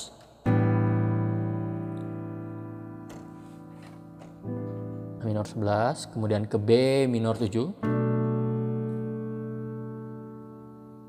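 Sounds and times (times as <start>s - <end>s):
piano chord ringing: 0.4s - 6.7s, 7.4s - 11.0s.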